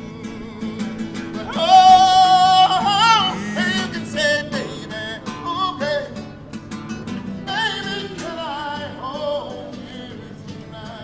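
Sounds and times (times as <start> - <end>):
man singing: 0.0 - 6.3, 7.4 - 11.0
strummed acoustic guitar: 0.0 - 11.0.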